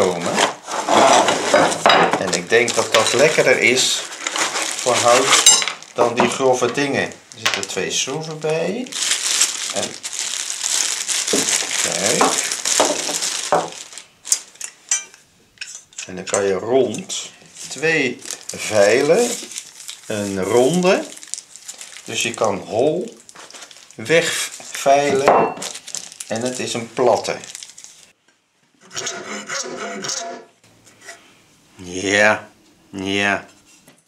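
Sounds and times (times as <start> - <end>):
metal file scraping: 28.8 - 31.2.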